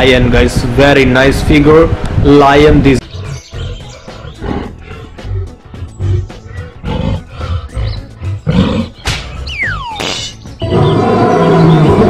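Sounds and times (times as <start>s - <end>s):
lion roar sound effects: 3.0s - 9.0s, 10.6s - 12.0s
background music with steady beat: 3.0s - 10.8s.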